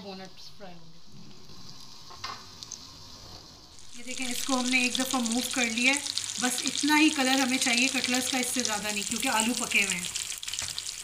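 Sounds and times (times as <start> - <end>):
food sizzling in hot oil: 0.5 - 11.0
oil crackling: 3.7 - 11.0.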